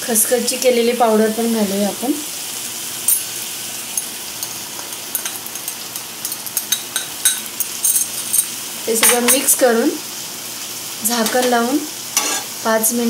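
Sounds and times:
beans sizzling in oil: 0.0s - 13.0s.

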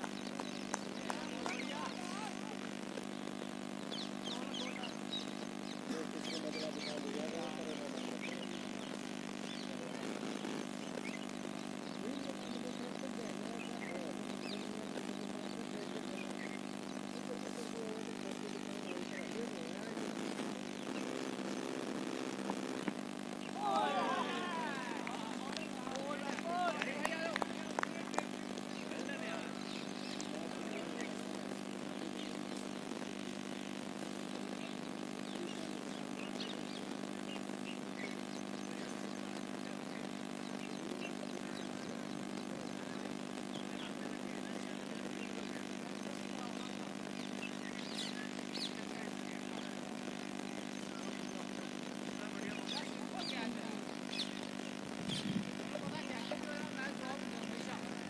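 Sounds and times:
steady mechanical drone: 0.0s - 58.0s
players shouting: 23.6s - 27.4s.

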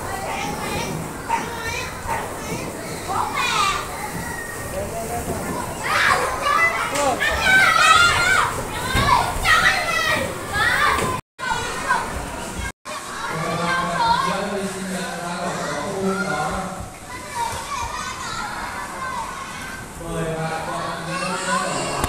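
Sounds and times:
children playing and calling out: 0.0s - 14.5s, 15.3s - 22.0s.

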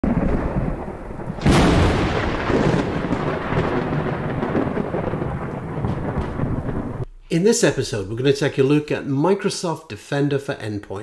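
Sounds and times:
thunder crack and rumble: 0.0s - 7.1s.

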